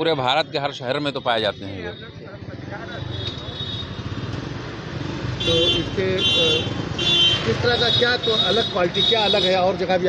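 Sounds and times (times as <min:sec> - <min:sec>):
car horn honking: 0:05.4 - 0:09.6.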